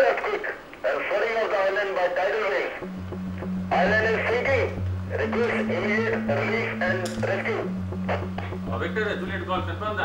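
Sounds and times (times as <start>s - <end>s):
person speaking: 0.2s - 10.0s
background music: 2.8s - 10.0s
low steady drone note: 2.8s - 10.0s.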